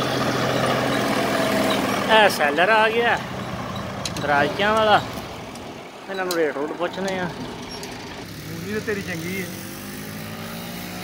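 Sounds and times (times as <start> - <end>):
tractor engine running: 0.0 - 10.0.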